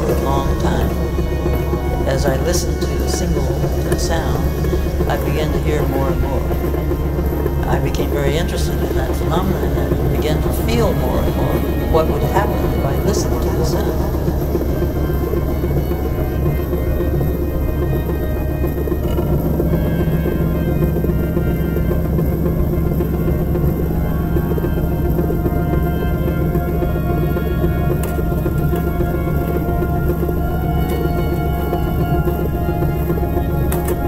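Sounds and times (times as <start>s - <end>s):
drone music with low tones: 0.0s - 34.0s.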